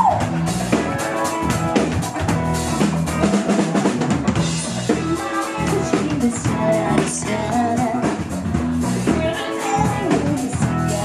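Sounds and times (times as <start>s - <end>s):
drum kit steady beat: 0.0s - 11.0s
electric bass: 0.0s - 11.0s
electric guitar: 0.0s - 11.0s.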